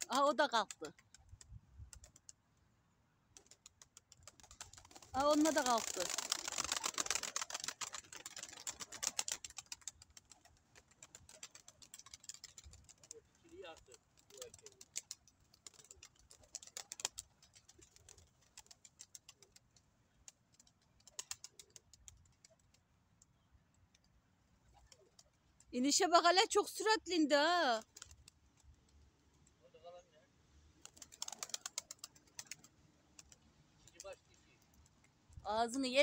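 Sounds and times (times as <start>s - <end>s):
pigeon wings flapping: 0.0s - 2.4s, 3.4s - 22.8s, 27.8s - 28.4s, 30.8s - 35.0s.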